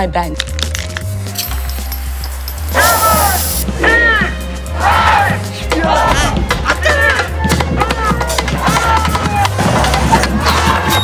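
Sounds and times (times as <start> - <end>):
trailer music with deep bass: 0.0 - 11.0
people shouting: 2.7 - 11.0.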